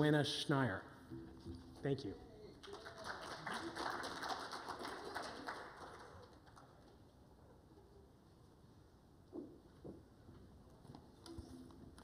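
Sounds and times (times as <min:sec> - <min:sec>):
audience applause: 0:02.6 - 0:07.0.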